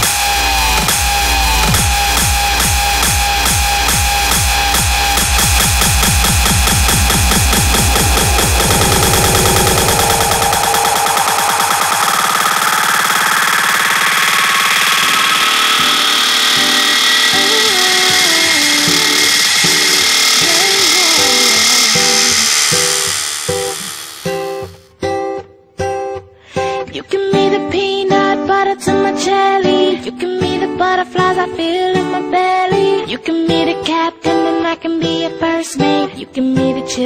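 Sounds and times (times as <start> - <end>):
techno beat with heavy kick: 0.0 - 24.7
rising synth sweep: 0.0 - 24.8
gliding synth melody: 4.7 - 24.8.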